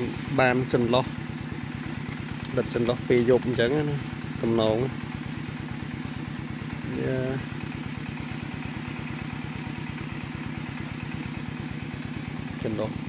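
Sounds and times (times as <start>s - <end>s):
small engine idling: 0.0s - 13.0s.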